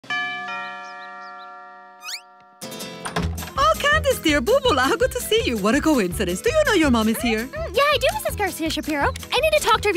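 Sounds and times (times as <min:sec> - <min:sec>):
two-tone doorbell chime: 0:00.1 - 0:02.7.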